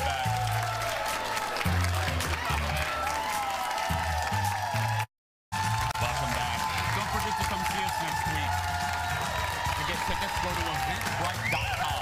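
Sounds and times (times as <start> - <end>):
upbeat music with bass line: 0.0 - 3.0, 3.9 - 12.0
studio audience applauding: 0.0 - 12.0.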